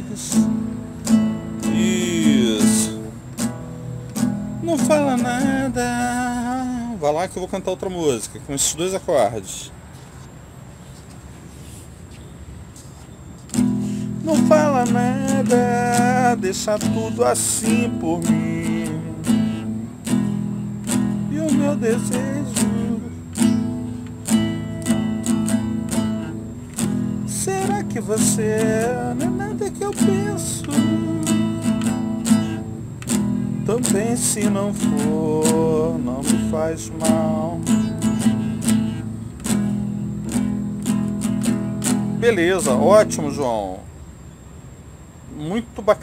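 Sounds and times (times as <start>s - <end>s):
nylon-string guitar strums: 0.0s - 6.4s, 13.5s - 43.5s.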